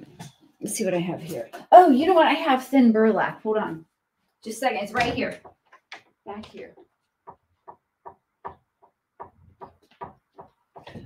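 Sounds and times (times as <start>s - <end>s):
soft knocks and taps: 5.0s - 11.0s.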